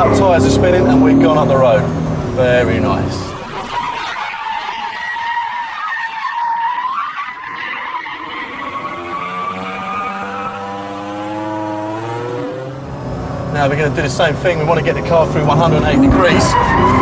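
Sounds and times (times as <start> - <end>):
car engine: 0.0 - 17.0
tyres squealing: 3.2 - 11.1, 16.2 - 17.0.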